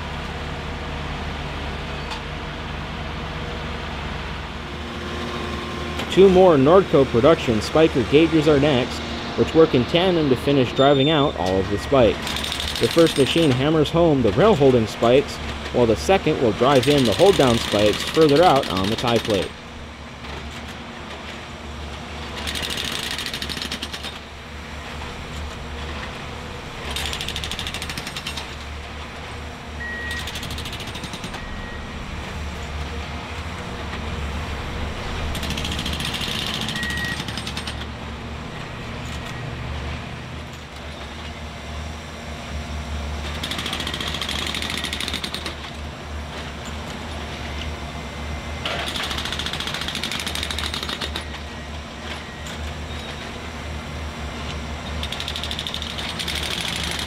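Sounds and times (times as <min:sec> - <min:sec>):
machine engine running: 0:05.3 - 0:19.8, 0:28.4 - 0:40.0
hydraulic hammer driving spikes: 0:10.0 - 0:19.6, 0:26.8 - 0:28.7, 0:30.0 - 0:31.6, 0:35.2 - 0:38.0, 0:43.3 - 0:45.8, 0:48.6 - 0:51.5, 0:55.0 - 0:57.0.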